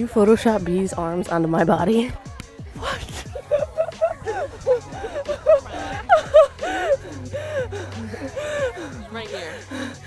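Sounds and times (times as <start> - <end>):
women laughing: 2.8 - 10.0.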